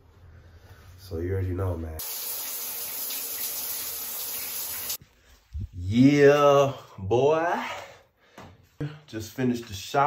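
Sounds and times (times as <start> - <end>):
water spraying from shower head: 2.0 - 5.0.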